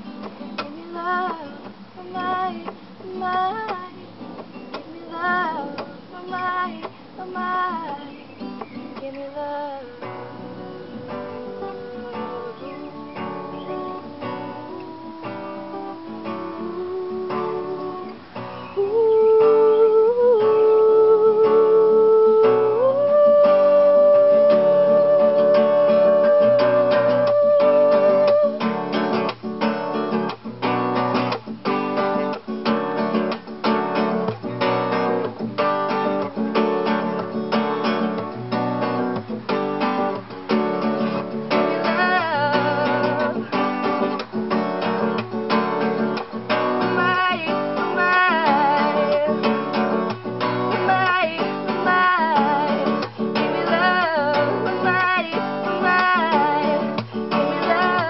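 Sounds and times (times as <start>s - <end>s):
acoustic guitar strumming: 0.0s - 58.0s
woman singing: 0.5s - 29.3s, 34.0s - 58.0s.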